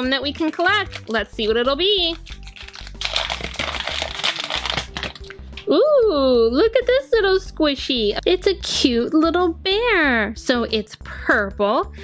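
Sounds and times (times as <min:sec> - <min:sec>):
foil packet crinkling and tearing: 0:00.4 - 0:05.6.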